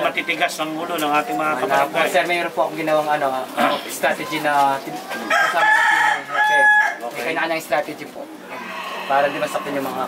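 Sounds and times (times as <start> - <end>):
rooster crowing: 5.1 - 7.0, 8.5 - 10.0.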